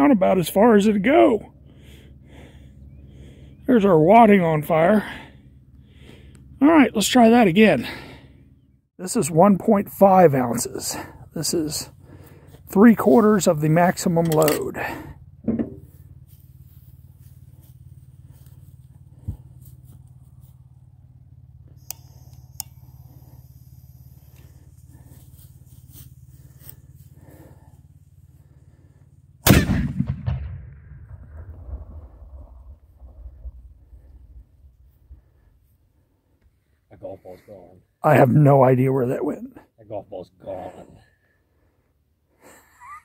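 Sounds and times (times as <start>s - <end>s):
cannon firing: 29.4s - 33.8s.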